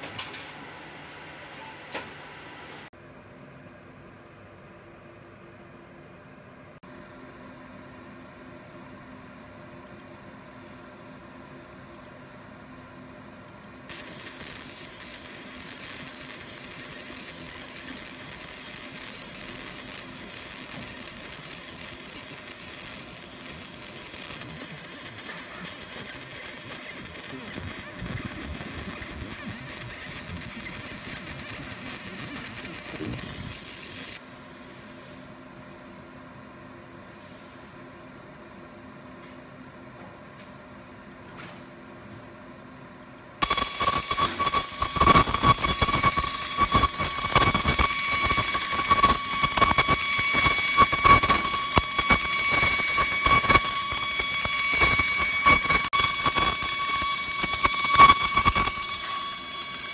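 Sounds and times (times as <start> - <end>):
laser hissing on metal: 13.9 - 34.2, 43.4 - 59.9.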